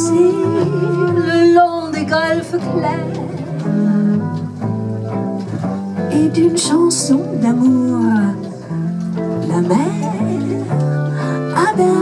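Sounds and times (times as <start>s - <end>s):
person singing: 0.0s - 4.4s, 9.4s - 12.0s
guitar accompaniment: 0.0s - 12.0s
jazz band playing: 0.0s - 12.0s
upright double bass: 0.0s - 12.0s.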